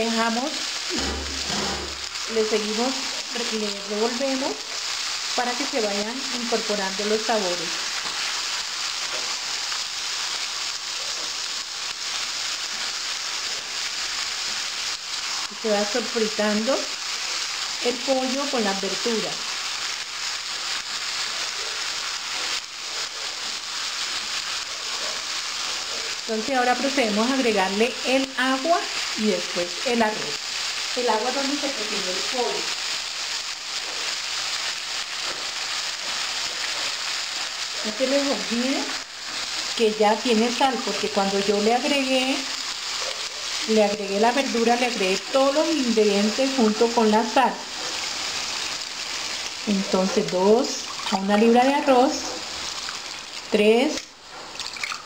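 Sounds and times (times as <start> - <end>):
food sizzling in oil: 0.0 - 55.0.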